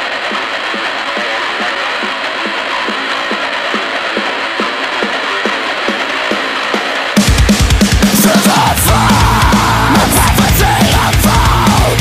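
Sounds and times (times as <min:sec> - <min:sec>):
steady electronic beat: 0:00.0 - 0:12.0.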